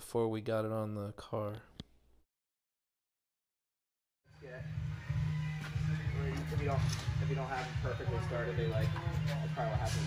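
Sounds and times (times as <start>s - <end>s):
radio music with pulsing bass: 4.4s - 10.0s.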